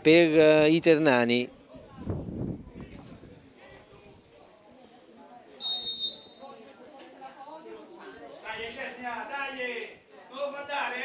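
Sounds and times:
referee's whistle blast: 0:05.6 - 0:06.4.

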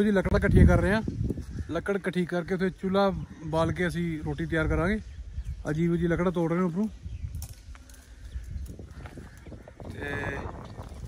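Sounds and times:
wind rumble on microphone: 0:00.0 - 0:11.0
rustling branches: 0:04.6 - 0:11.0
branches cracking: 0:06.7 - 0:11.0.

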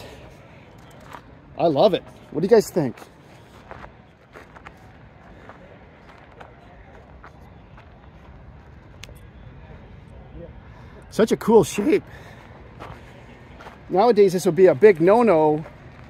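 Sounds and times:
distant chatter: 0:00.0 - 0:16.0
soft footsteps: 0:02.0 - 0:09.2, 0:12.4 - 0:16.0.

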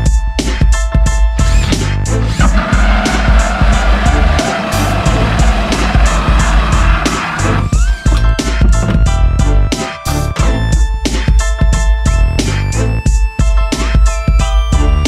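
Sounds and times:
power drill grinding through plastic: 0:02.4 - 0:07.7
electronic beat music: 0:02.4 - 0:10.0.

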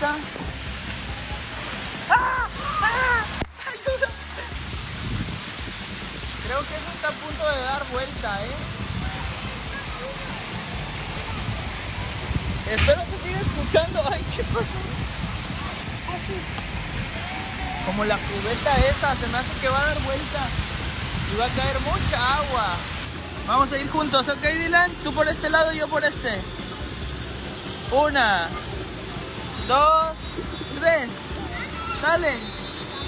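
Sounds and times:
water spraying and splashing: 0:00.0 - 0:33.0.

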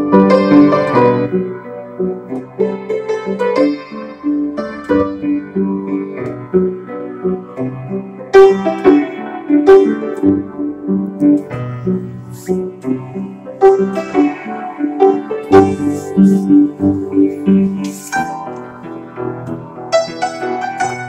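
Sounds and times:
out of tune piano playing: 0:00.0 - 0:21.0.

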